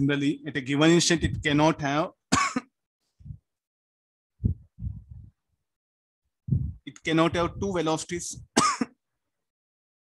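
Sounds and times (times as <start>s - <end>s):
man clearing throat: 2.4s - 2.7s, 8.6s - 9.0s
faint low sound: 6.5s - 7.8s.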